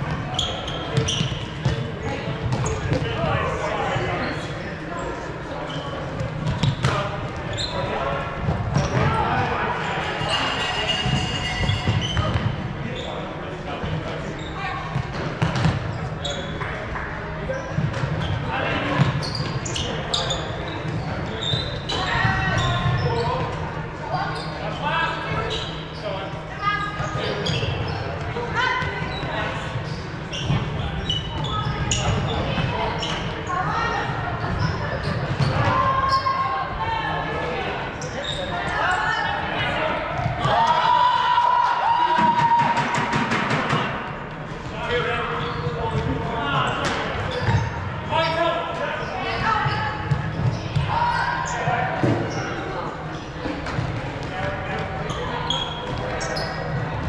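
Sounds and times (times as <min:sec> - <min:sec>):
players' voices and calls echoing: 0:00.0 - 0:57.0
sneaker squeaks on hardwood: 0:00.1 - 0:03.1, 0:05.7 - 0:09.2, 0:10.2 - 0:16.8, 0:17.5 - 0:36.4, 0:38.0 - 0:39.2, 0:45.4 - 0:48.4, 0:49.3 - 0:57.0.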